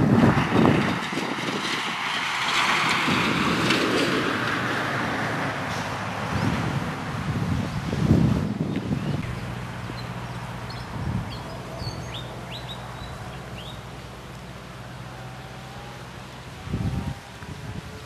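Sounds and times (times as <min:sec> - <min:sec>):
wind buffeting microphone: 0:00.0 - 0:18.0
steady rushing hiss: 0:01.9 - 0:18.0.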